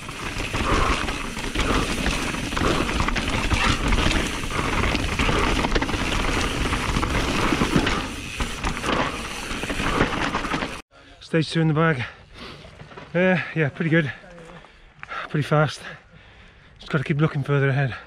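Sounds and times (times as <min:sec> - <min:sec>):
bike tyres clattering over rock: 0:00.0 - 0:10.8.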